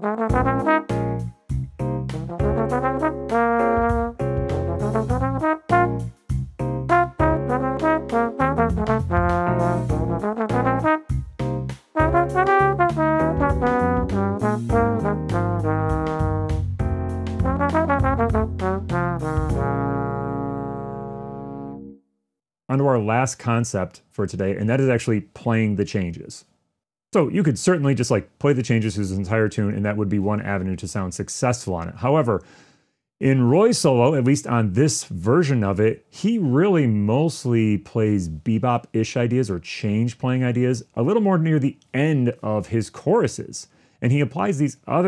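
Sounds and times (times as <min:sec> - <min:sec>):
trombone playing jazz: 0:00.0 - 0:22.0
breaths: 0:32.4 - 0:33.1, 0:43.6 - 0:44.1.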